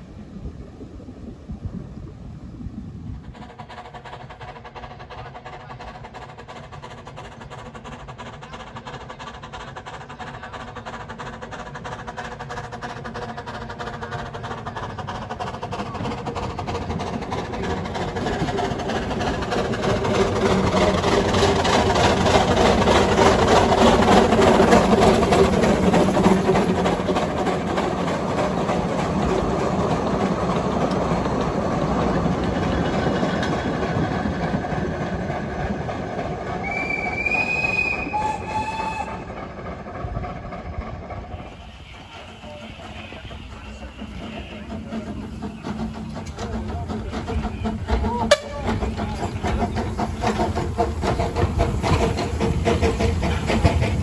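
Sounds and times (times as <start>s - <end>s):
train rattling past: 1.4s - 54.0s
steam locomotive chuffing: 3.1s - 54.0s.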